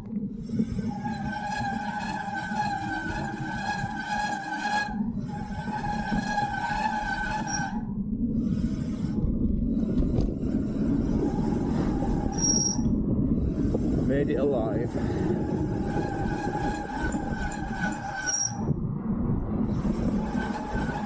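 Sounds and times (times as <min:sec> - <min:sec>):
bicycle tyre rumble on tarmac: 0:00.0 - 0:21.0
steady high whine: 0:00.0 - 0:21.0
wind noise on microphone: 0:00.0 - 0:21.0.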